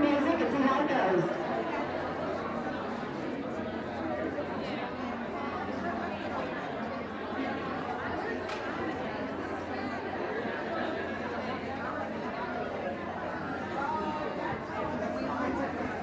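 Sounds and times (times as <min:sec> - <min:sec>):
crowd chatter in large hall: 0:00.0 - 0:16.0.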